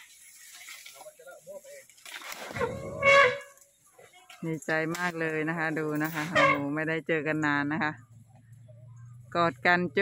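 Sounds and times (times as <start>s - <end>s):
elephant trumpeting: 2.5s - 3.6s.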